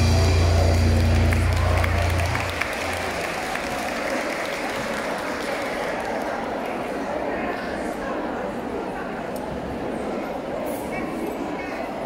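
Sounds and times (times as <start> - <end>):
band's low note: 0.0 - 3.0
audience applauding: 0.0 - 6.8.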